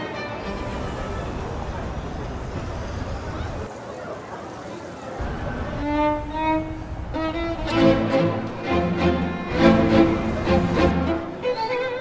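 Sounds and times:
violins playing classical music: 0:00.0 - 0:01.2, 0:05.6 - 0:12.0
faint background noise: 0:00.0 - 0:12.0.

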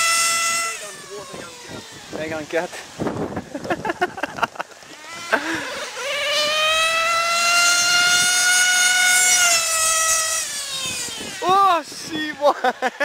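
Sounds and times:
nitro engine high-pitched whine: 0:00.0 - 0:03.3, 0:04.8 - 0:12.0.

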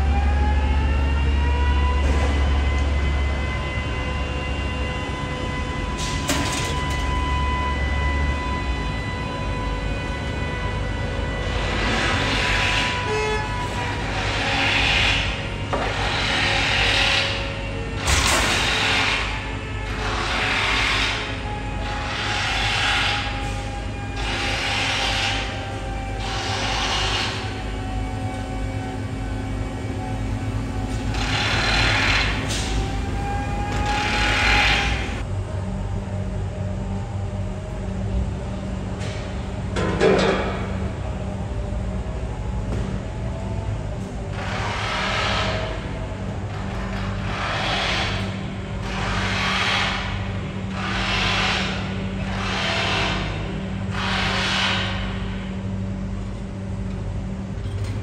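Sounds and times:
crane engine rumble: 0:00.0 - 0:58.0.

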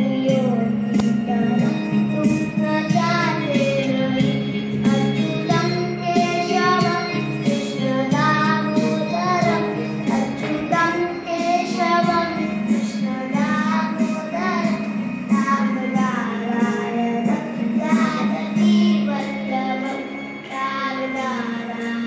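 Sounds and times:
boy singing: 0:00.0 - 0:22.0
electronic keyboard chords: 0:00.0 - 0:22.0.

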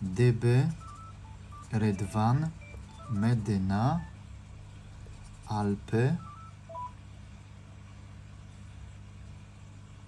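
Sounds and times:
short electronic beeps: 0:00.8 - 0:04.2, 0:06.2 - 0:07.0.

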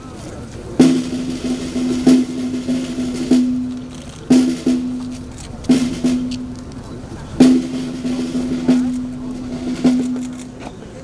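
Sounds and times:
accented snare drum stroke: 0:00.7 - 0:10.7
snare drum roll: 0:00.8 - 0:10.4.

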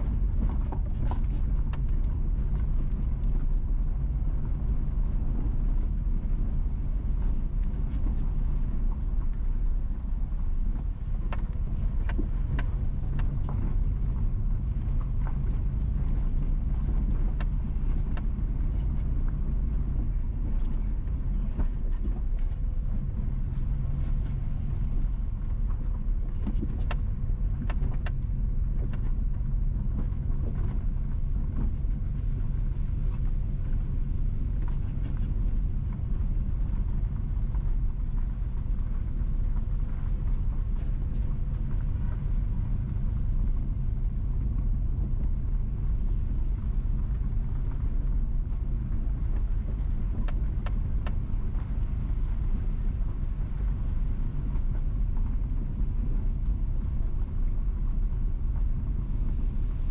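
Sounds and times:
car engine and tyres rumbling: 0:00.0 - 0:59.9.

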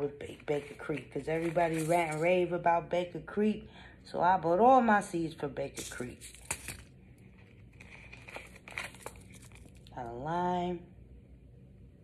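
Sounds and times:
paper packets crinkling: 0:00.7 - 0:02.2, 0:05.8 - 0:09.9.

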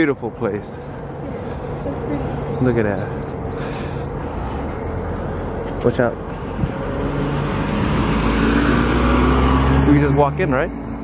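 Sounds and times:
vehicle engine hum and tyre noise: 0:00.0 - 0:11.0.

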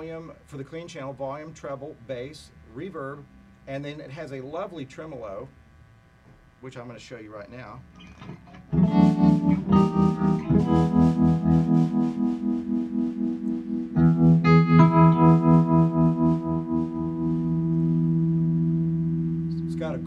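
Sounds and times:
electric guitar chords with tremolo: 0:07.9 - 0:20.0.

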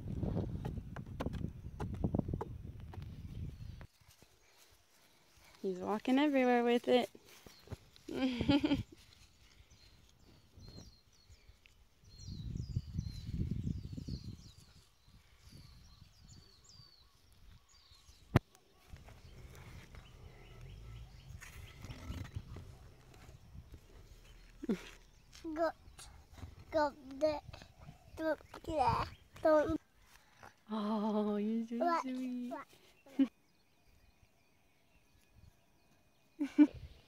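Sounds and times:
wind buffeting microphone: 0:00.0 - 0:03.9, 0:12.0 - 0:24.4, 0:25.2 - 0:29.8.

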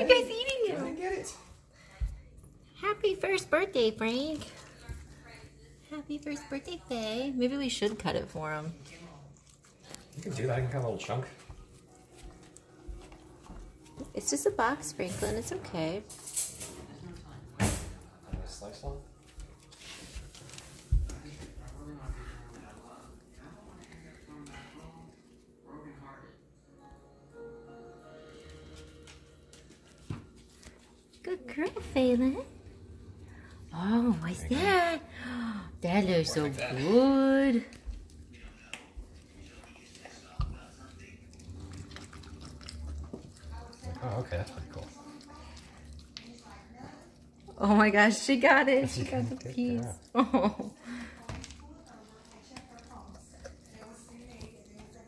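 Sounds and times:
dogs licking and chewing: 0:00.0 - 0:16.2, 0:16.8 - 0:25.6, 0:28.4 - 0:35.2, 0:35.8 - 0:55.0.

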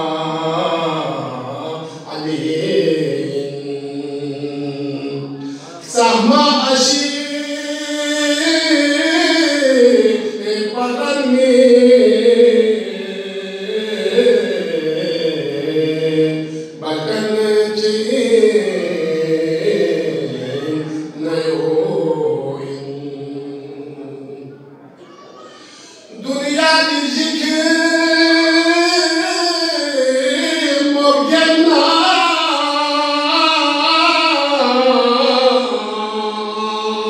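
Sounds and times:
man chanting: 0:00.0 - 0:24.6, 0:25.9 - 0:37.0.

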